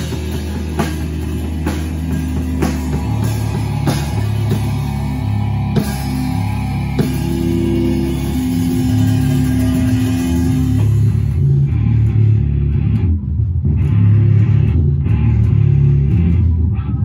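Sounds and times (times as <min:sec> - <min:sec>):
bass guitar: 0:00.0 - 0:17.0
drums: 0:00.0 - 0:17.0
electric guitar: 0:00.0 - 0:17.0.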